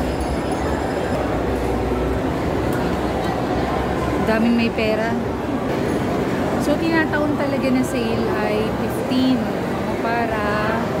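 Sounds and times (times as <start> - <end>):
babble of large crowd: 0.0 - 11.0.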